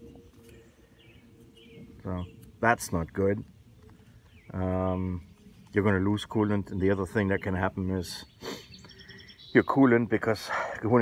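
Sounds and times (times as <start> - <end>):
distant bird chirps: 0.0 - 11.0
low steady hum: 0.0 - 11.0.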